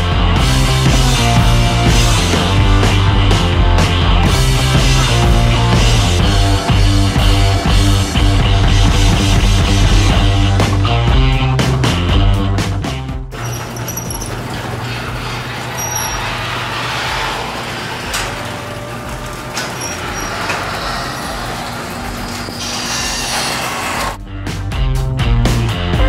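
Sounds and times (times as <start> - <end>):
rock music: 0.0 - 13.5, 24.2 - 26.0
garage door opener running: 13.4 - 24.2.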